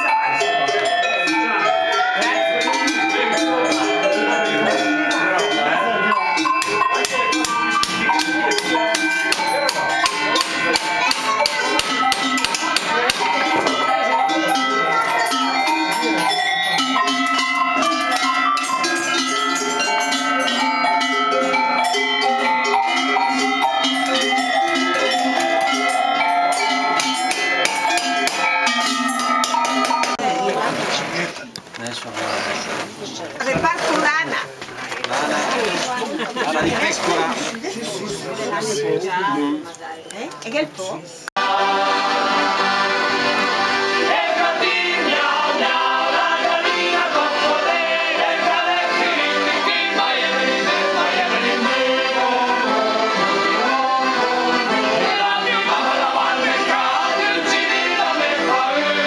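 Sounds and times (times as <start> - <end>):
tuned metal bells ringing: 0.0 - 30.5.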